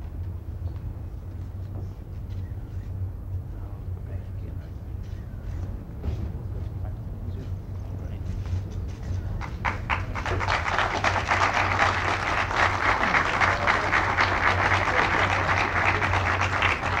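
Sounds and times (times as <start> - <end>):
low steady hum: 0.0 - 17.0
audience applause: 9.4 - 17.0.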